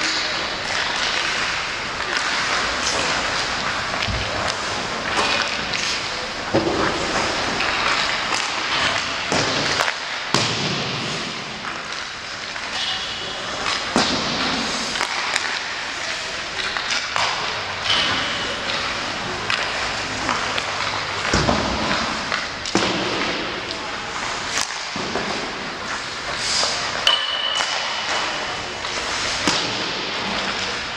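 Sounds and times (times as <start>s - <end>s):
pucks banging into boards: 0.0s - 15.9s, 16.6s - 30.9s
pucks cracking off sticks: 0.0s - 30.9s.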